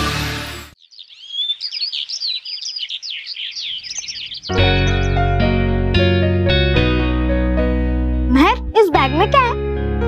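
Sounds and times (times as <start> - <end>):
background music: 0.0 - 0.8, 4.5 - 10.0
birds chirping: 0.7 - 5.6.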